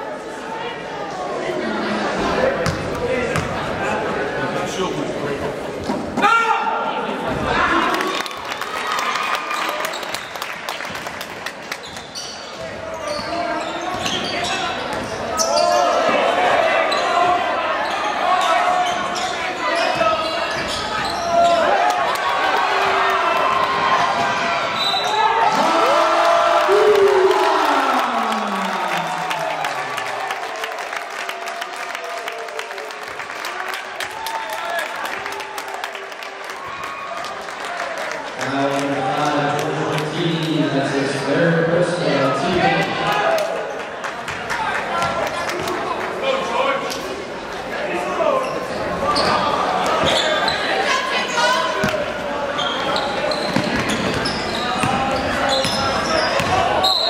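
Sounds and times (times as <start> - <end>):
murmur of crowd voices: 0.0 - 57.0
sneaker squeaks: 11.8 - 16.1, 16.8 - 21.7, 24.6 - 25.3, 48.4 - 57.0.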